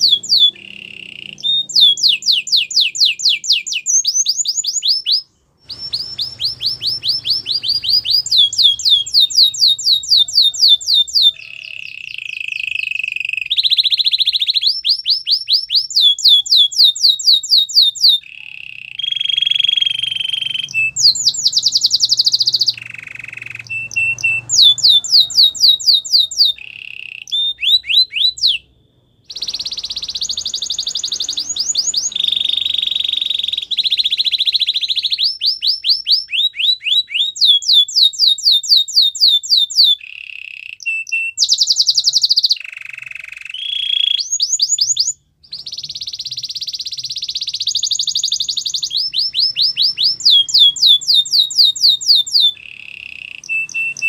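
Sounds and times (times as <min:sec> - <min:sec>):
canary singing: 0:00.0 - 0:54.0.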